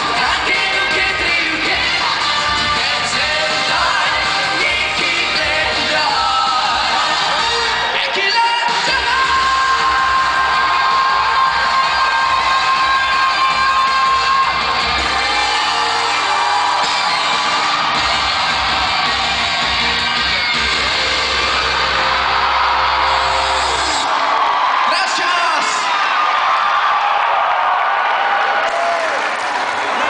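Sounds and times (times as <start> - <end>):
loud live pop-rock music: 0.0 - 27.4
audience cheering and whooping: 0.0 - 30.0.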